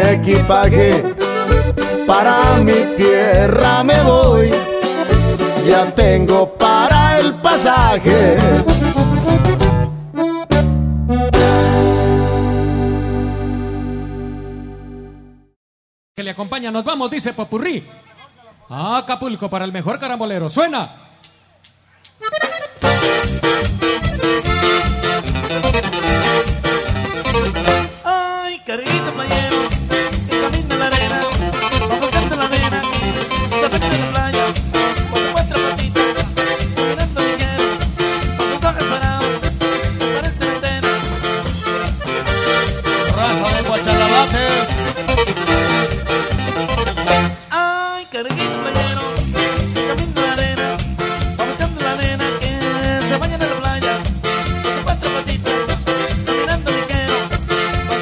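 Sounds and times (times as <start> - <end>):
steady bass beat: 0.0 - 14.8, 41.0 - 47.3
accordion-led band playing: 0.0 - 15.6, 22.2 - 28.1, 28.9 - 47.5, 48.3 - 58.0.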